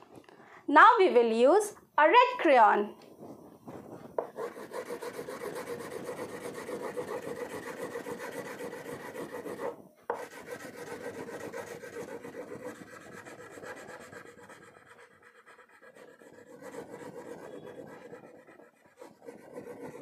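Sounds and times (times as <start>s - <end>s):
crayon scratching on paper: 3.2s - 20.0s.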